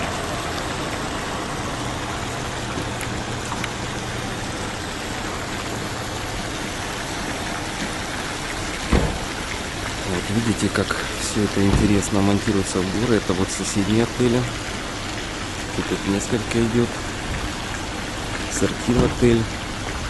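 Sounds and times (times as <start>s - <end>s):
fountain splashing into basin: 0.0s - 20.0s
thump: 8.9s - 9.4s.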